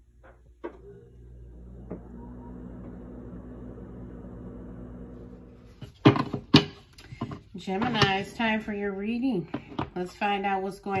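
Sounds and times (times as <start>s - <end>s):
low hum: 0.6s - 5.7s.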